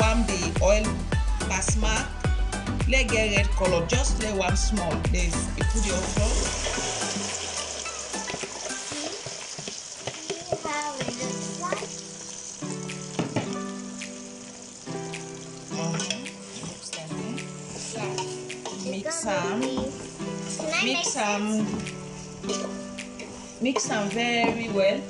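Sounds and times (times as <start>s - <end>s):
background music with held notes: 0.0s - 25.0s
okra sizzling in oil: 5.7s - 25.0s
wooden spoon scraping metal pot: 15.8s - 24.7s.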